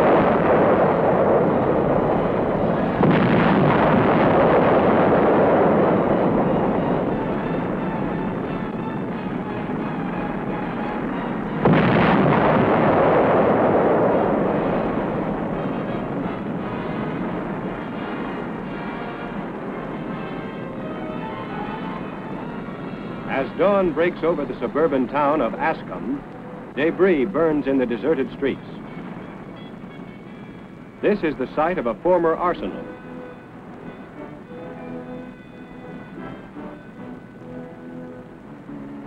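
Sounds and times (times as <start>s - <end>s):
demolition explosions: 0.0s - 38.8s
long rumble of blast: 0.0s - 39.0s.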